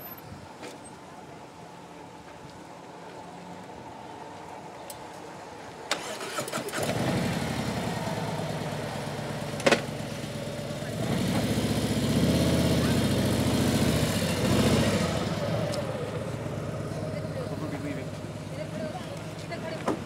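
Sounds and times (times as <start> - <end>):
motorcycle engine idling and revving: 6.0 - 20.0.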